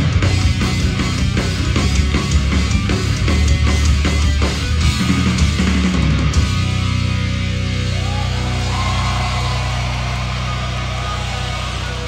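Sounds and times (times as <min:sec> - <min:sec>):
distorted rock chord: 0:00.0 - 0:12.0
guitar feedback: 0:05.9 - 0:12.0.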